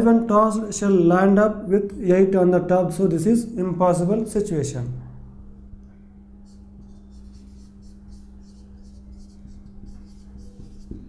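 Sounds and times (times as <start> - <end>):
steady low hum: 0.0 - 11.0
marker writing on whiteboard: 6.4 - 11.0.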